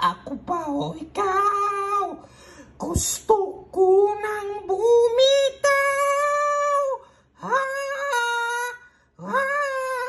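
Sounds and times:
woman breathing: 2.2s - 2.8s, 7.0s - 7.4s.

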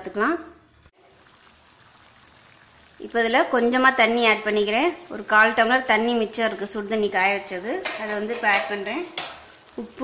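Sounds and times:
gravy simmering in a pan: 0.8s - 7.5s, 9.0s - 10.0s.

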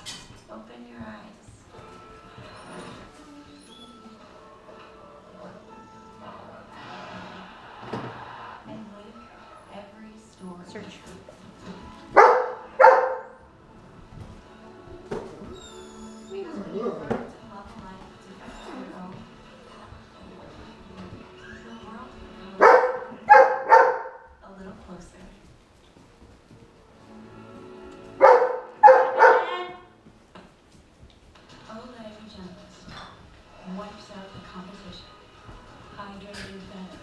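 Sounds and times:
tv background music: 0.0s - 37.0s
dog barking loudly: 12.2s - 13.4s, 22.6s - 24.3s, 28.2s - 29.8s.

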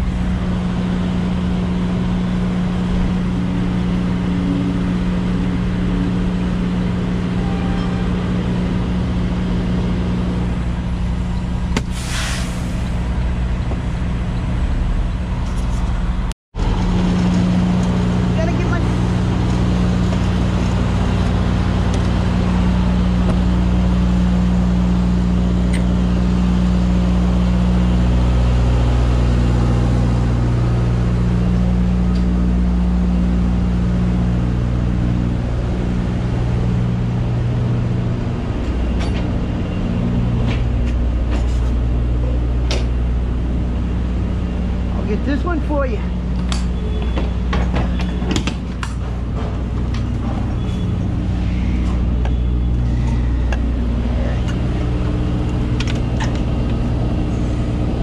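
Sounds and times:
diesel engine idling: 0.0s - 58.0s
air hiss: 11.8s - 12.9s.

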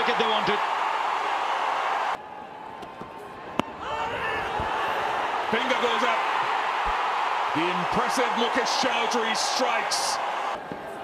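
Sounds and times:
crowd cheering: 0.0s - 11.0s
players shouting: 3.6s - 11.0s.

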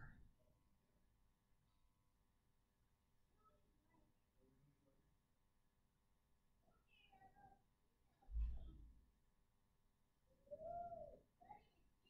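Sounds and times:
faint distant voice-like call: 10.4s - 11.9s.

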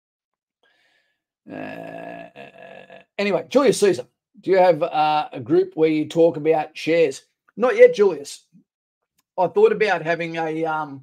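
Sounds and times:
man's gravelly hesitation uhh: 1.5s - 4.0s.

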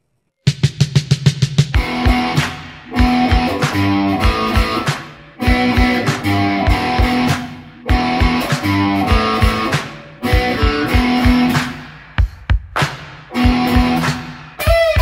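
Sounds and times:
electric guitar chord riff: 1.8s - 11.8s, 13.4s - 15.0s.

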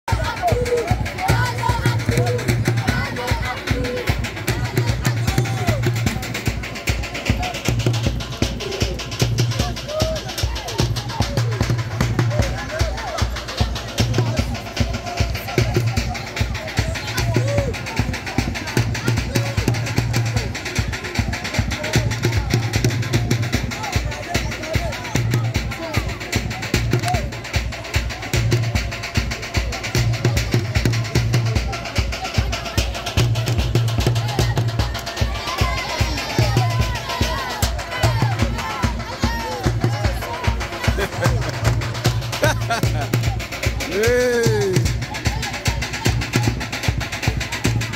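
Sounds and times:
crowd calling and shouting: 0.0s - 47.9s
fast steady drumming: 0.0s - 47.9s.

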